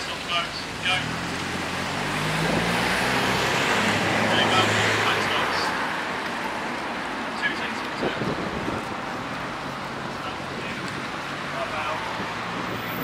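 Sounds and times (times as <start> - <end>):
vehicle engine hum and tyre noise: 0.0 - 13.0.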